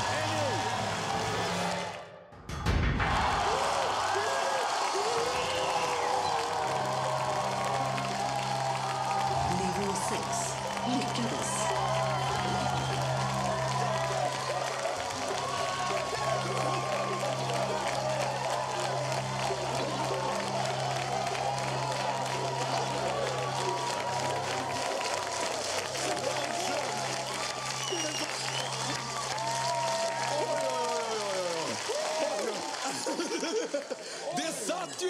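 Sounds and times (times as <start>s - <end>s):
audience clapping and cheering: 0.0s - 35.0s.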